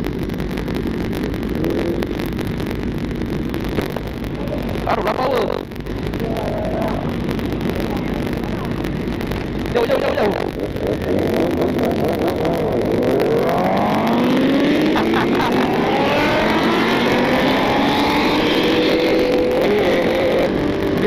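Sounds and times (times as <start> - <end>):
motorcycle engines accelerating: 0.0 - 21.0.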